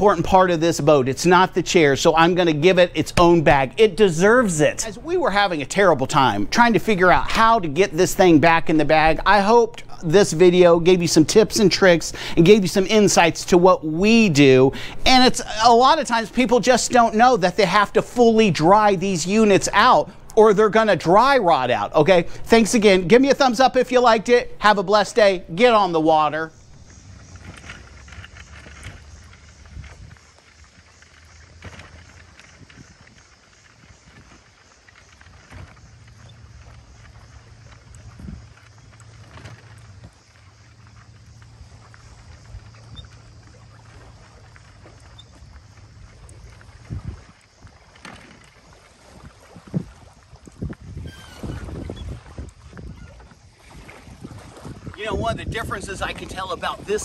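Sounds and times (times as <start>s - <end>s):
cart wheels rolling on concrete: 0.0s - 53.5s
kayak knocks and bumps: 0.0s - 57.0s.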